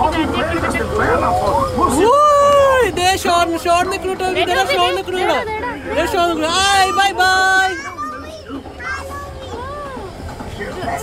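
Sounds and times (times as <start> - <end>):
tractor engine rumble: 0.0 - 11.0.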